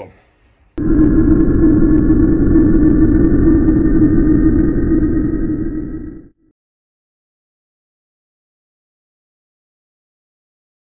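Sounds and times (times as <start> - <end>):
loud rumbling drone: 0.8 - 6.4.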